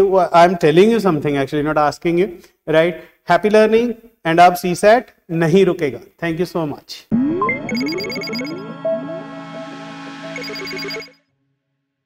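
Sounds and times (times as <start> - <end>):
electronic jingle: 7.1 - 11.3.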